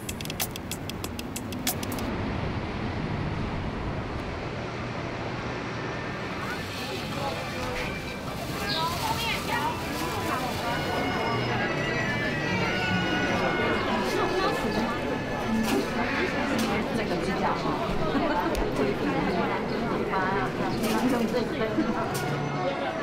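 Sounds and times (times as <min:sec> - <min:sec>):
rapid sharp clicks: 0:00.0 - 0:02.1
traffic noise: 0:00.0 - 0:23.0
indistinct voices: 0:06.1 - 0:23.0.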